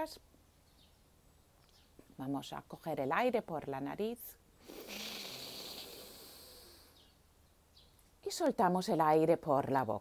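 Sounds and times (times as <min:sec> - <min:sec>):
woman inhaling through nose: 0:04.6 - 0:07.0.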